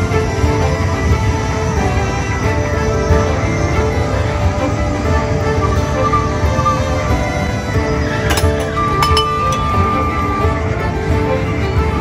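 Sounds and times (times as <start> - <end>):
loud background music: 0.0 - 12.0
steel tumblers clinking: 8.1 - 10.2.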